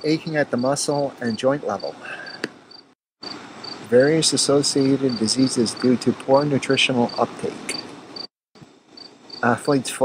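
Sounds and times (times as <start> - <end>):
insect chirping: 1.8 - 6.0, 7.0 - 9.7.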